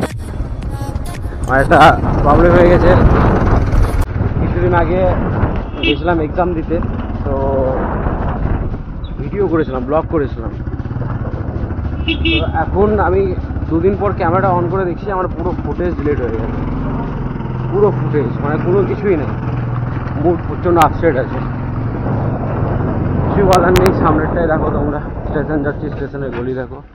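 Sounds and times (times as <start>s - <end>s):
motorcycle engine running: 0.0s - 26.9s
road noise: 0.0s - 26.9s.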